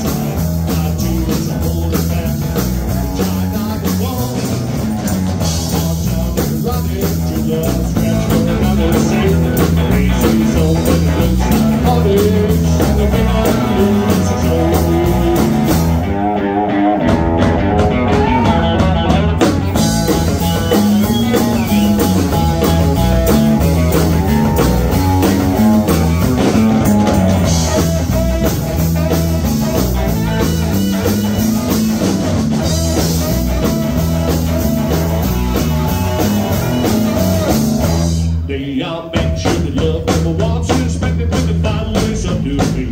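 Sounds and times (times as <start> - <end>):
rockabilly band playing live: 0.0 - 42.9
saxophone: 27.0 - 38.1.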